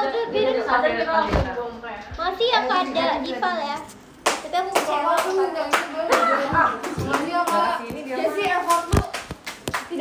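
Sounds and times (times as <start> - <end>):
voices: 0.0 - 10.0
hand claps: 8.4 - 10.0.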